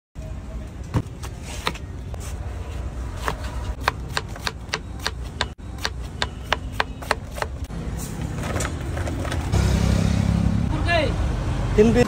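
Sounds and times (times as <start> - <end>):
knife chopping cabbage on board: 3.2 - 7.6.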